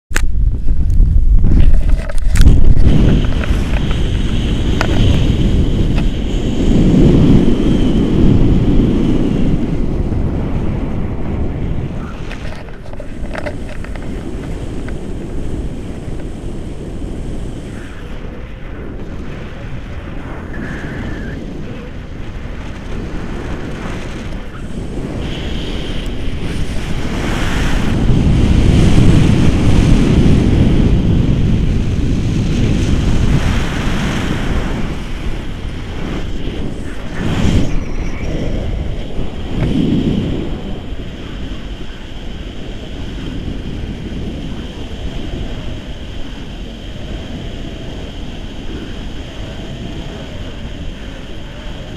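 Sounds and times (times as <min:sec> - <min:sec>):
wind buffeting microphone: 0:00.1 - 0:51.9.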